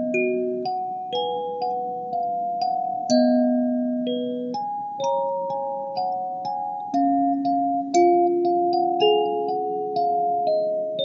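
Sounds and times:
kalimba playing carol melody: 0:00.0 - 0:11.0.

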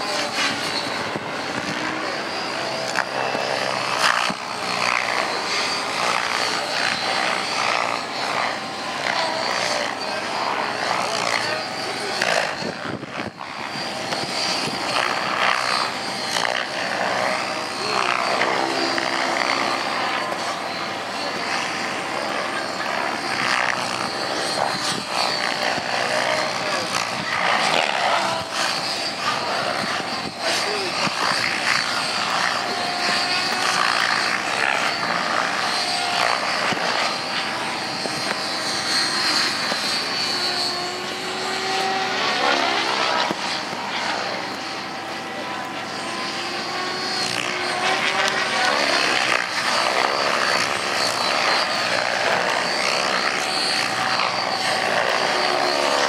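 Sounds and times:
model helicopter rotor whine: 0:00.0 - 0:56.0.

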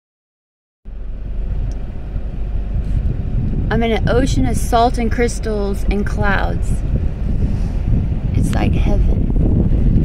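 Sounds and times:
wind buffeting microphone: 0:00.9 - 0:10.0.

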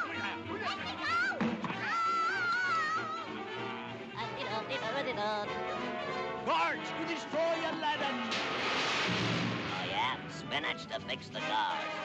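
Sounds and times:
orchestral cartoon music: 0:00.0 - 0:12.0.

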